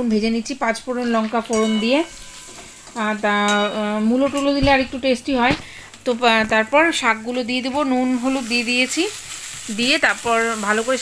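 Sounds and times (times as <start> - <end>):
vegetables sizzling: 0.0 - 11.0
metal spatula stirring in pan: 1.4 - 4.4.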